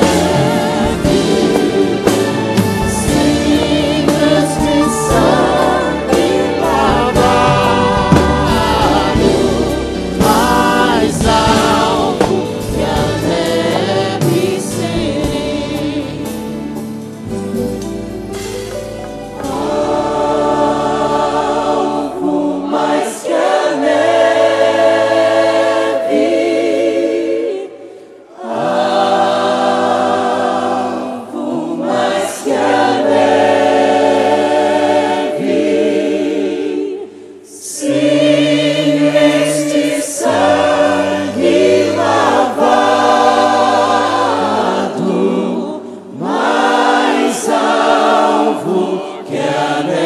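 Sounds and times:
gospel choir singing: 0.0 - 50.0.

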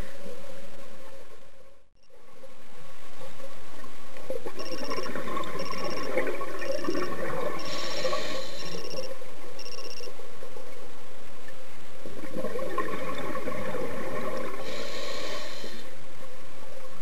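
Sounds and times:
bubbles crackling: 4.3 - 9.0, 12.0 - 14.9
diver breathing through regulator: 7.6 - 9.0, 14.6 - 16.0
short electronic beeps: 8.6 - 10.1.

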